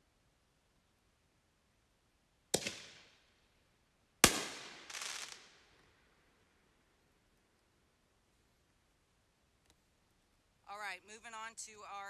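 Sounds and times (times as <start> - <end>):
firework shell bangs: 4.2 - 5.5.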